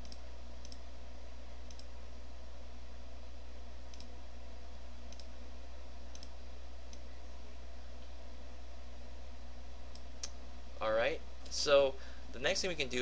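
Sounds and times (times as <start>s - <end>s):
computer mouse clicking: 0.0s - 0.8s, 1.7s - 1.9s, 3.9s - 4.2s, 5.1s - 5.3s, 6.1s - 7.1s
steady low hum: 0.0s - 13.0s.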